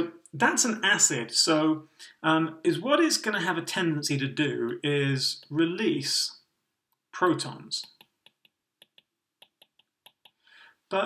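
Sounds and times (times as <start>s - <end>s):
stylus tapping tablet screen: 7.8s - 10.4s.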